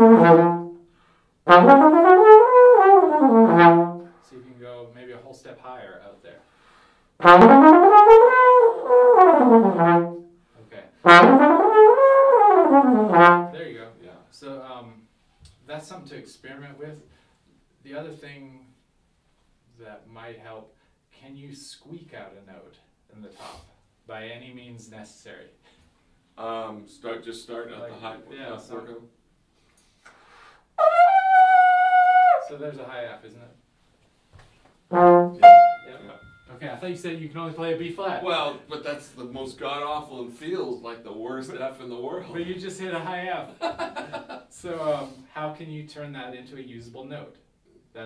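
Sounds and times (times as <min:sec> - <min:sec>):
trombone glissando: 0:00.0 - 0:00.9, 0:01.5 - 0:04.1, 0:07.2 - 0:10.3, 0:11.0 - 0:13.8, 0:30.8 - 0:32.6, 0:34.9 - 0:36.5
soft breath: 0:00.9 - 0:01.4, 0:06.4 - 0:07.2, 0:29.6 - 0:30.7.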